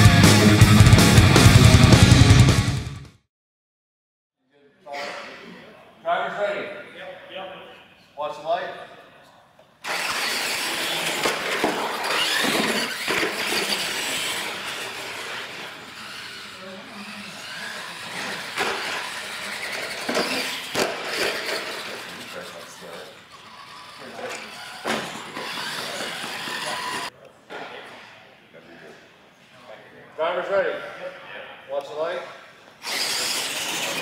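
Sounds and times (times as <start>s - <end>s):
toy truck motors whining: 9.8s - 27.1s, 32.8s - 34.0s.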